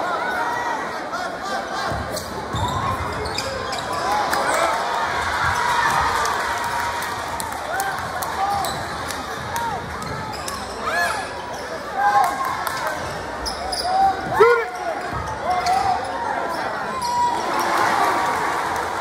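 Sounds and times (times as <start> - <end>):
crowd chatter: 0.0 - 19.0
sneakers squeaking on court: 1.9 - 4.2, 8.5 - 11.9, 13.0 - 17.7.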